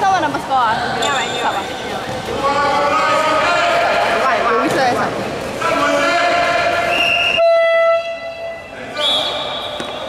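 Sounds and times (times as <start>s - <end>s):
voices: 0.0s - 7.4s
buzzer-like horn blast: 7.4s - 8.6s.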